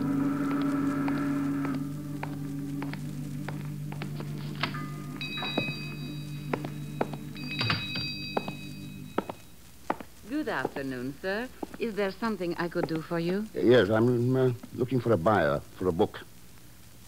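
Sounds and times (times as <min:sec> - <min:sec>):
organ music: 0:00.0 - 0:09.6
footsteps: 0:00.0 - 0:13.6
shop door bell ringing: 0:04.7 - 0:09.4.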